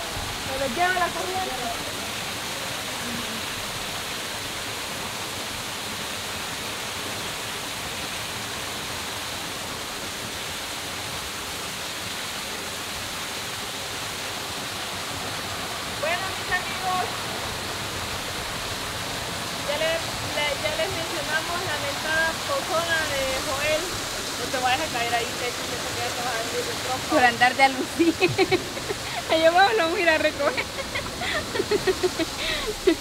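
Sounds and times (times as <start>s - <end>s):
stream water rushing down cascade: 0.0s - 33.0s
voices: 0.4s - 2.2s, 16.0s - 17.3s, 19.5s - 33.0s.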